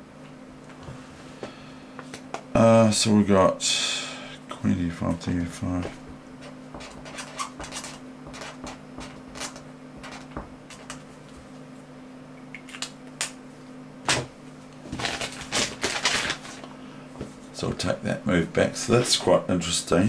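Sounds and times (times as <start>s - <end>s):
low electrical hum: 0.0s - 20.0s
scraping and rustling: 5.8s - 11.4s
small clicks and scrapes: 6.8s - 11.0s.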